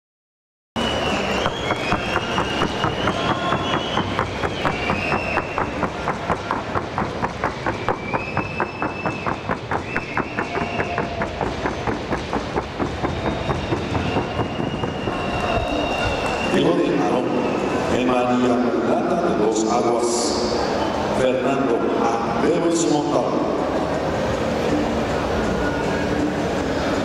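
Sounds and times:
high whistle-like tones: 0.8s - 6.8s, 7.4s - 18.7s, 20.2s - 21.2s
hooves on wooden board: 1.4s - 16.6s.

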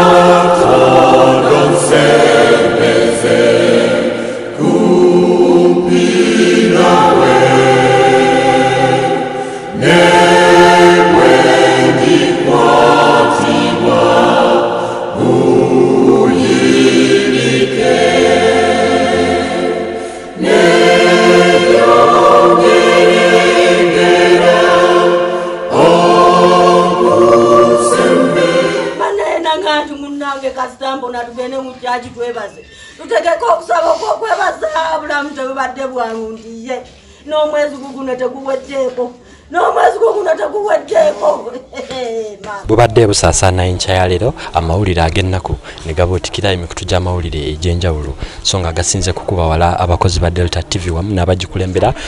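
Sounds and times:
choir singing a slow hymn: 0.0s - 29.8s.

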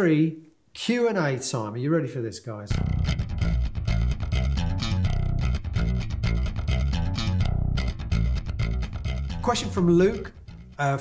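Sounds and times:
electric guitar: 2.7s - 9.5s
electric bass guitar line: 2.7s - 11.0s.

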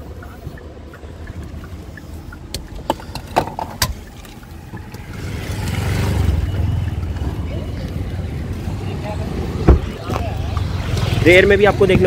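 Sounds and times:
street traffic noise: 0.0s - 12.0s
car door shutting: 9.6s - 10.2s.

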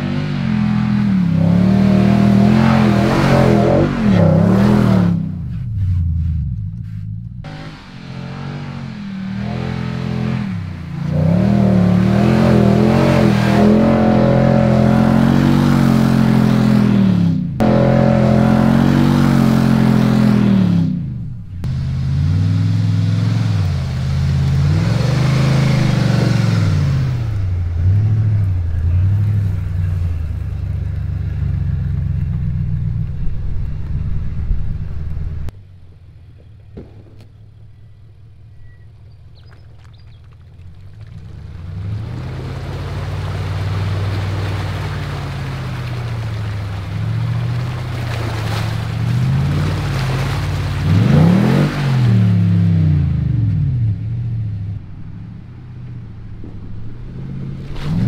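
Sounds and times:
engine revving hard: 0.0s - 5.4s, 7.4s - 21.0s, 48.3s - 53.3s.

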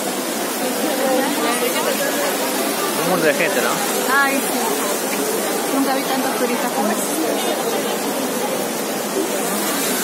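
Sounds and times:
crowd chatter: 0.0s - 10.0s
fountain water cascading: 0.0s - 10.0s.

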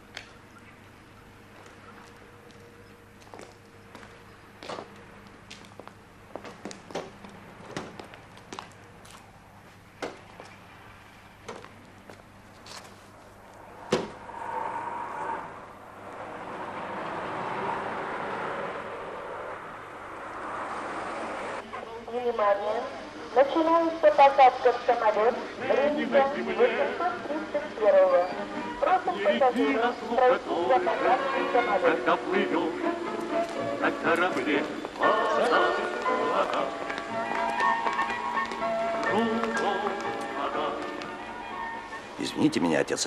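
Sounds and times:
car engine and road noise: 0.0s - 21.7s
footsteps around a car: 1.5s - 14.2s, 33.2s - 41.2s
car door slamming: 13.9s - 14.2s.

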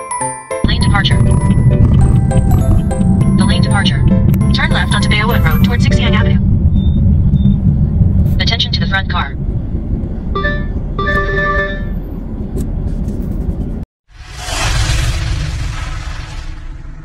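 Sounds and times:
chiming warning tones: 0.6s - 7.7s, 10.4s - 12.0s
car road and engine rumble: 0.7s - 17.0s.

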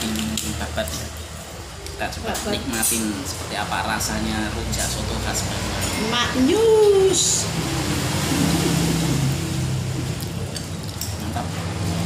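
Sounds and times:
low engine hum: 6.2s - 12.0s.

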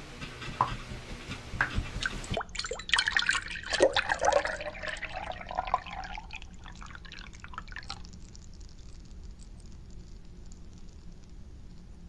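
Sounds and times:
water dripping and plinking: 2.1s - 11.8s.

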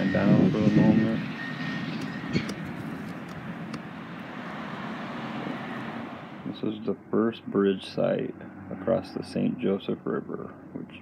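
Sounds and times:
outdoor background noise: 0.0s - 11.0s.

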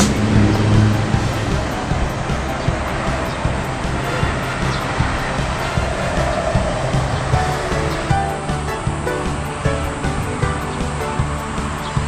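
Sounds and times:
background music with steady beat: 0.0s - 12.0s
held melodic notes: 0.0s - 12.0s
wash of noise: 0.0s - 12.0s.

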